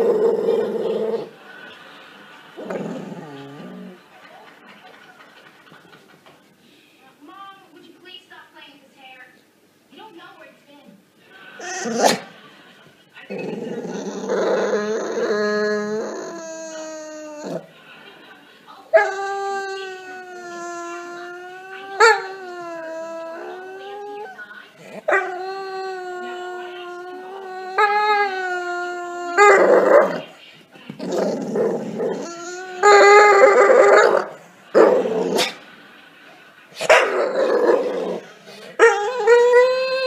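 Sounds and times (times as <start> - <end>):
dog howling: 0.0 - 1.3, 13.5 - 17.7, 18.9 - 30.3, 31.0 - 35.6, 36.9 - 40.0.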